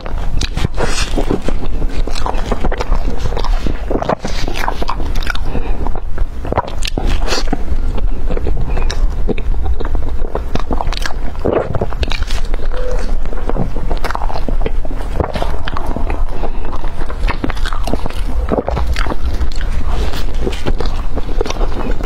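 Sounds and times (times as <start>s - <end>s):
biting into bread roll: 0.0s - 22.0s
close chewing with mouth smacks: 0.0s - 22.0s.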